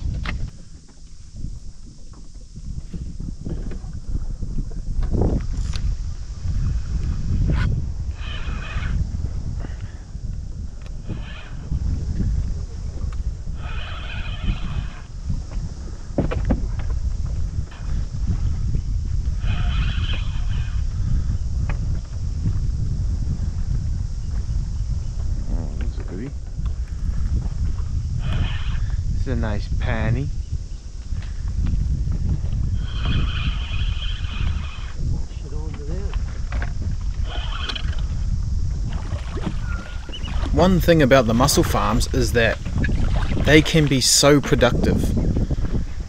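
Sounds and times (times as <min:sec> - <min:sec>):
wind rumbling on microphone: 0:00.0 - 0:46.0
fishing reel whirring: 0:02.7 - 0:15.5, 0:17.8 - 0:21.4, 0:27.6 - 0:29.1, 0:32.1 - 0:35.1, 0:36.8 - 0:44.1.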